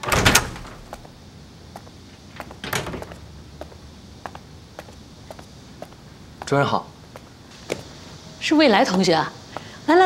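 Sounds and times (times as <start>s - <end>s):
wooden door opening: 0.0s - 1.1s, 2.3s - 3.3s
quiet noise: 0.0s - 10.0s.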